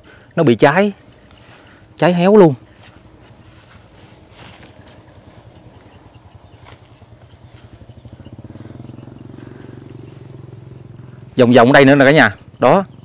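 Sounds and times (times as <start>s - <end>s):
small engine running: 1.0s - 13.0s.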